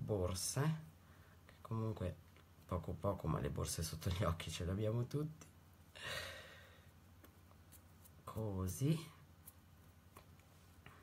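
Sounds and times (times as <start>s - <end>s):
person sighing: 6.0s - 6.8s.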